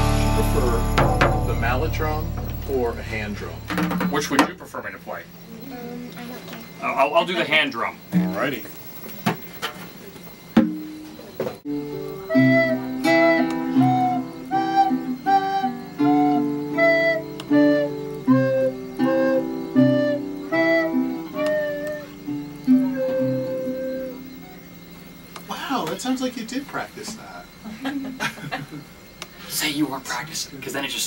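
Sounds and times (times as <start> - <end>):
melody over bass and chords: 0.0 - 3.8.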